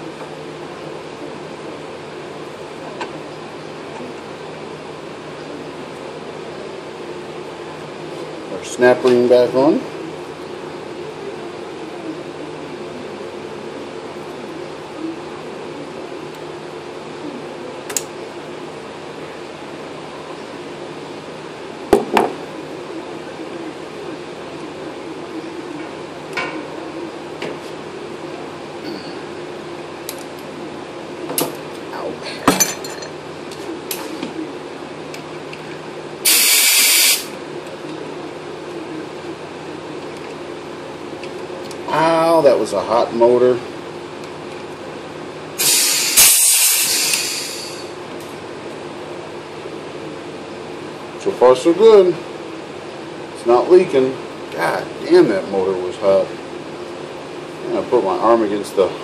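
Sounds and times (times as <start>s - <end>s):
steady machine hum: 0.0s - 59.0s
compressed air hiss: 36.2s - 37.4s, 45.6s - 47.9s.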